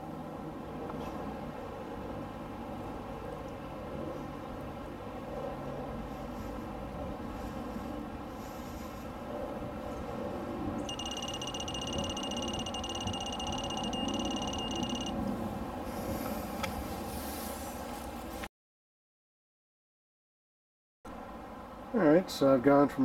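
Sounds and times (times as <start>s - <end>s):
high-pitched electronic alert tone: 10.9s - 15.2s.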